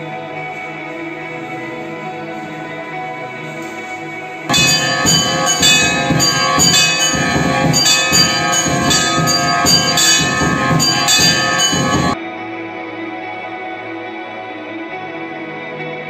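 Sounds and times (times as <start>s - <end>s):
temple bell ringing: 4.5s - 12.2s.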